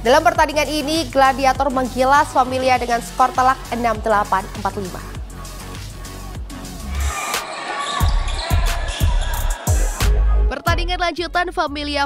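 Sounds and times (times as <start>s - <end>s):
background music: 0.0s - 12.0s
court noise: 6.9s - 10.3s.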